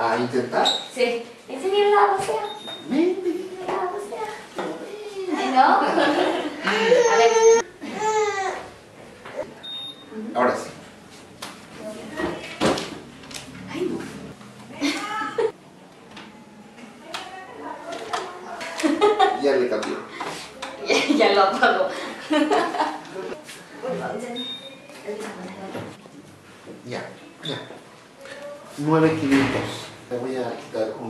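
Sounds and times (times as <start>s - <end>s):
toddler fussing and crying: 6.6s - 8.7s.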